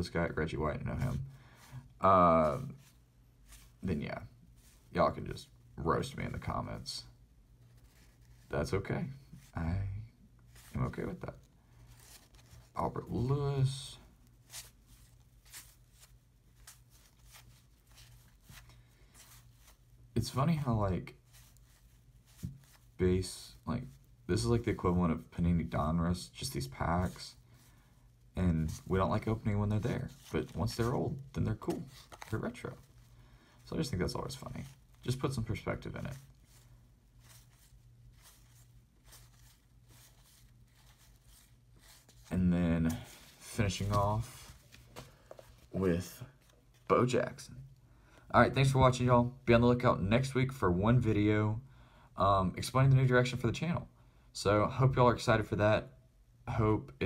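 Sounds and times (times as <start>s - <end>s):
cardboard cards being shuffled: 28.6s - 33.1s, 33.7s - 46.9s.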